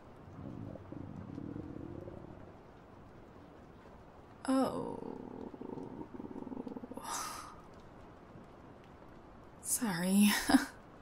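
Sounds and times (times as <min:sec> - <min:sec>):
stomach growling: 0:00.1 - 0:03.0, 0:04.6 - 0:07.8.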